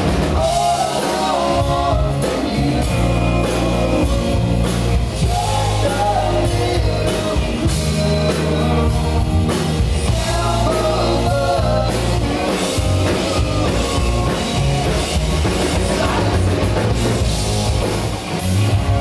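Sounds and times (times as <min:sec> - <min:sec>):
man singing lead vocals: 0:00.0 - 0:17.2
rock band playing: 0:00.0 - 0:19.0.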